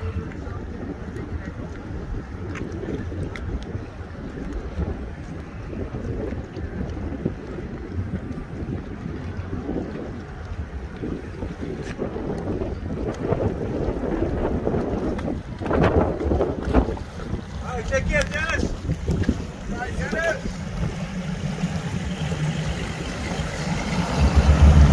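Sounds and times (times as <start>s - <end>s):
outboard motors idling: 0.0s - 24.9s
wind buffeting microphone: 0.0s - 24.9s.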